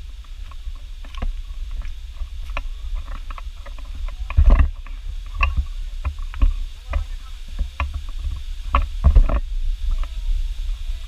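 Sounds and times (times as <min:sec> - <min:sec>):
footsteps on rocky dirt trail: 0:00.0 - 0:10.2
low rumble on microphone: 0:00.0 - 0:11.0.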